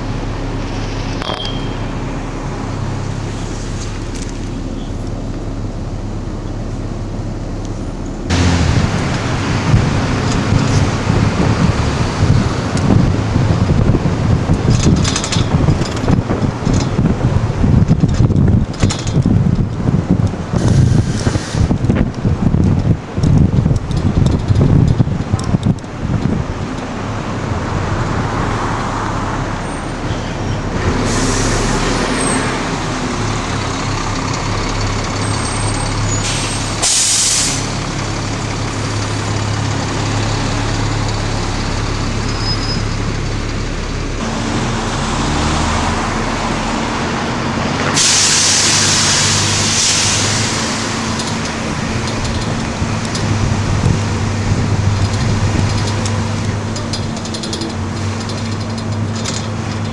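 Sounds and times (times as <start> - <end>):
bus engine humming: 0.0 - 59.9
air-brake hiss: 20.6 - 21.8, 31.0 - 32.2, 36.1 - 37.8, 47.9 - 51.5.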